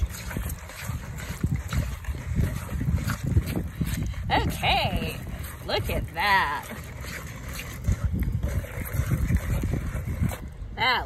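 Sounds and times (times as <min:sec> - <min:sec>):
whisk stirring paste in plastic bowl: 0:00.0 - 0:11.0
wind rumble on microphone: 0:00.0 - 0:11.0.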